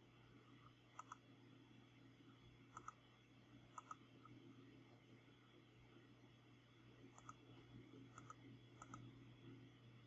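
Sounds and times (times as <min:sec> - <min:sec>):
low steady hum: 0:00.0 - 0:10.0
computer mouse clicks: 0:00.6 - 0:01.3, 0:02.7 - 0:03.0, 0:03.7 - 0:04.4, 0:07.1 - 0:07.4, 0:08.1 - 0:09.1.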